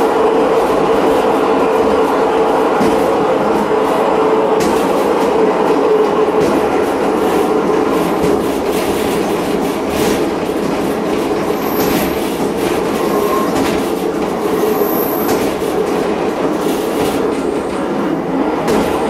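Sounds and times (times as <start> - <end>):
train wheels clicking over rail joints: 0.0 - 19.0
high-pitched wheel squeals: 12.9 - 13.8.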